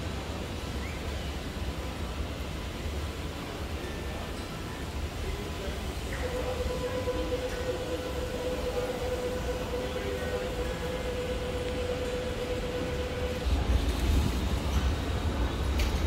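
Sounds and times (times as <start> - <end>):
mid-pitched tram hum: 0.0 - 16.0
tram rumble: 0.0 - 16.0.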